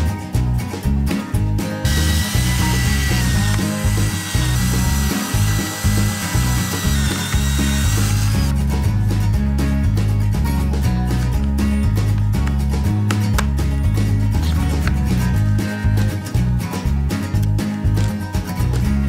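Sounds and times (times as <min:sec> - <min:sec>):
background music: 0:00.0 - 0:19.0
cordless drill whining: 0:01.8 - 0:08.6.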